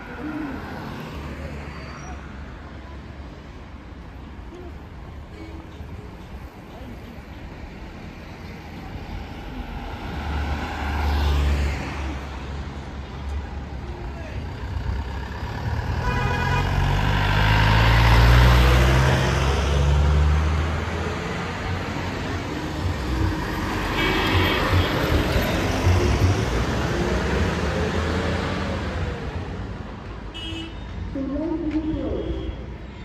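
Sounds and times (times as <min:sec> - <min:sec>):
road traffic passing: 0:00.0 - 0:33.0
heavy vehicle engine: 0:08.6 - 0:30.1.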